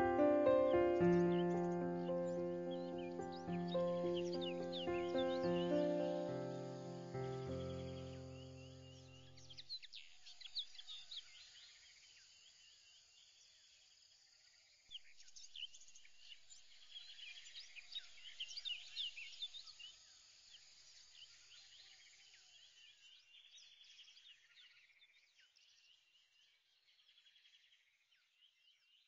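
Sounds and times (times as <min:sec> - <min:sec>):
music: 0:00.0 - 0:09.4
small birds chirping: 0:00.0 - 0:11.8.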